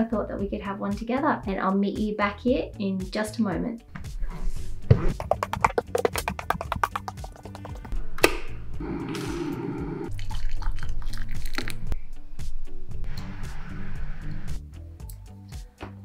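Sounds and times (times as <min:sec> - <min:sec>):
background music: 0:00.0 - 0:16.0
liquid pouring into a mug: 0:10.1 - 0:11.8.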